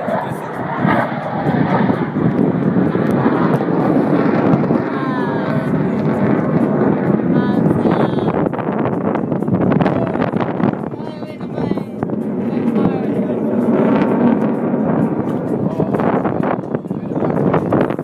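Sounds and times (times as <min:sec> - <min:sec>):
people's voices: 0:00.0 - 0:02.3, 0:03.5 - 0:06.4, 0:07.1 - 0:08.4, 0:09.8 - 0:14.2, 0:15.2 - 0:18.0
jet aircraft roar: 0:00.0 - 0:18.0
wind on microphone: 0:00.0 - 0:18.0.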